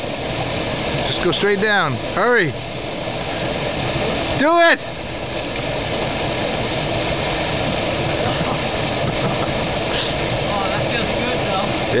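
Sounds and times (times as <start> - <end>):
small waterfall pouring into pool: 0.0 - 12.0.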